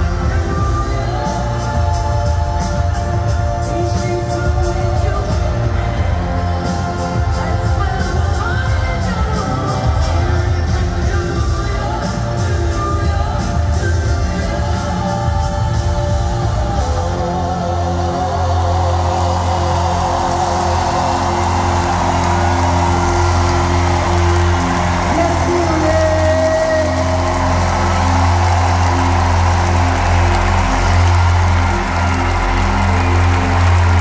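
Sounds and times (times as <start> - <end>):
live band music: 0.0 - 17.6.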